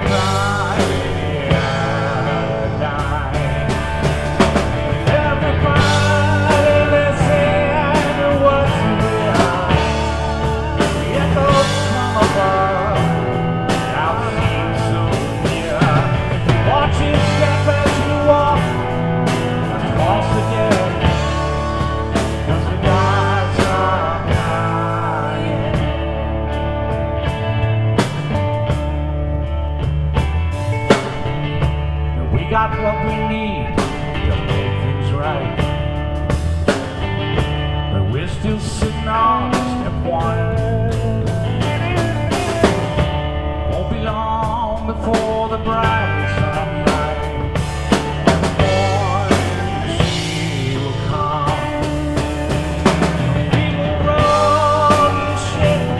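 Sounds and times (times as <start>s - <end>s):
drum kit hits: 0.0s - 35.0s, 45.2s - 55.9s
rock band playing: 0.0s - 55.9s.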